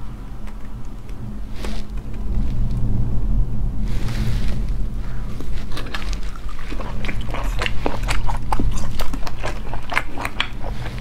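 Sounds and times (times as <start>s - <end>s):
steady low hum: 0.0s - 11.0s
wet chewing clicks and smacks: 0.4s - 2.7s, 5.4s - 11.0s.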